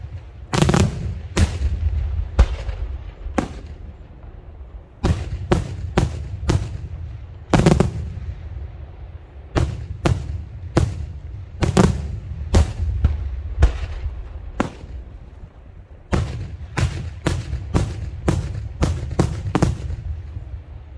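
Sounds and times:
low rumble: 0.0 - 20.9.

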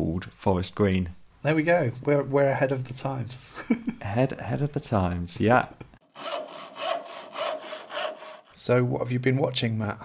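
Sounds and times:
hand saw cutting wood: 6.0 - 8.6.

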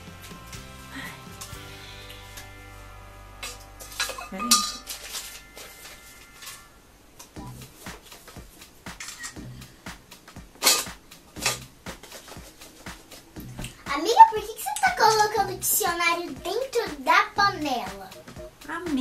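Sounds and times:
metal spoon clinking in a pot: 4.0 - 4.9.

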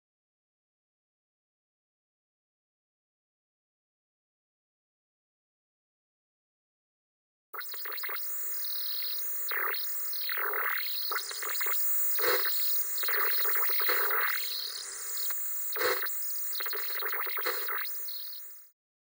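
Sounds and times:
television static hiss: 7.6 - 18.5.

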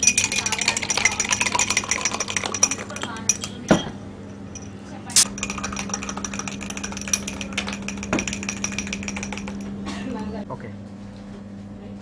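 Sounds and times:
metal spoon clinking against glass: 0.0 - 9.8
steady low hum: 0.0 - 12.0.

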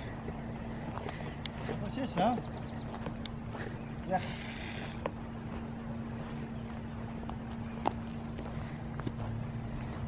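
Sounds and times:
faint steady hum: 0.0 - 10.0
footsteps on grass: 0.0 - 10.0
steady low rumble: 0.0 - 10.0.

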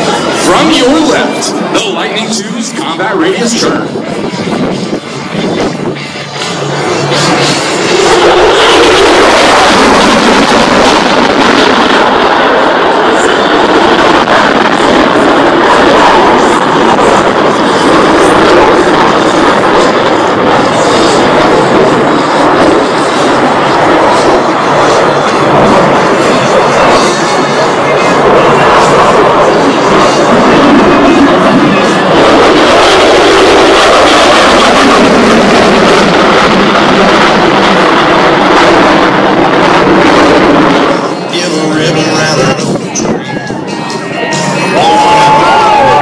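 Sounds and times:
jet engine roar: 0.0 - 46.0
music from loudspeakers: 41.3 - 46.0.

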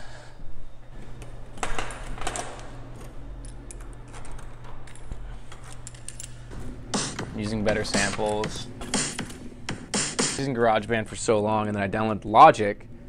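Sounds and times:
steady low hum: 0.0 - 13.0
keys jangling against lock: 1.8 - 6.5.

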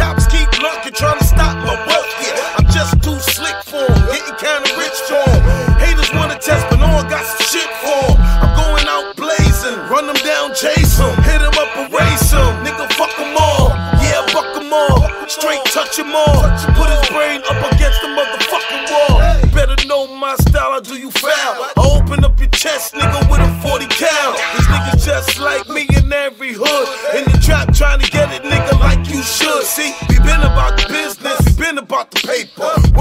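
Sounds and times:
heavy bass drum kicks: 0.0 - 0.6, 1.2 - 1.6, 2.6 - 4.2, 5.3 - 7.1, 8.0 - 9.6, 10.8 - 12.6, 13.5 - 14.3, 14.9 - 15.2, 16.3 - 17.1, 17.7 - 18.0, 19.1 - 19.8, 21.8 - 23.8, 24.6 - 26.2, 27.3 - 29.1, 30.0 - 31.6, 32.8 - 33.0
rapping over a beat: 0.0 - 33.0.

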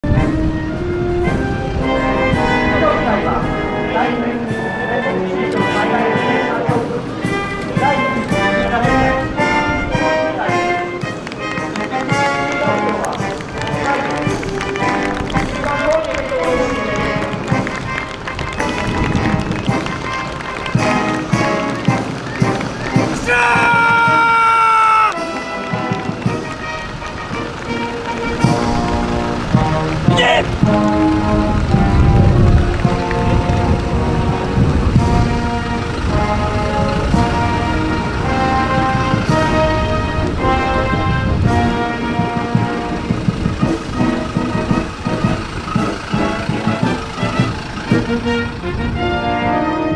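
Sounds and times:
military band playing march: 0.0 - 49.9.

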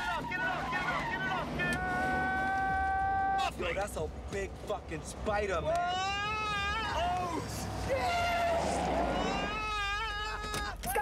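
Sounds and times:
man screaming in panic: 5.9 - 10.8.

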